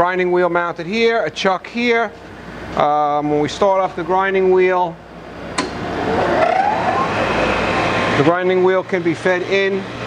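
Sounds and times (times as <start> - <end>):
motor switch click: 5.5 - 5.8.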